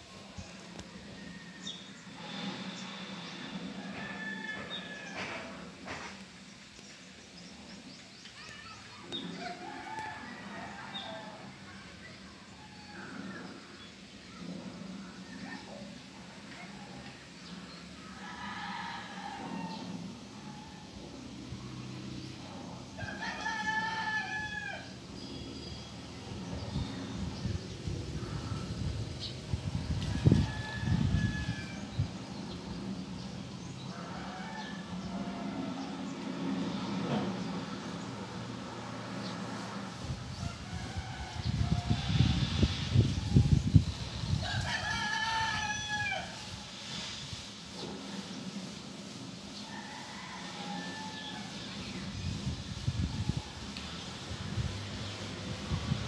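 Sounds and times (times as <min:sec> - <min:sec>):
rooster crowing: 0:03.7 - 0:05.7, 0:09.4 - 0:11.6, 0:18.0 - 0:20.9, 0:23.0 - 0:25.0, 0:30.0 - 0:32.0, 0:33.8 - 0:36.1, 0:44.4 - 0:46.5, 0:49.6 - 0:51.8.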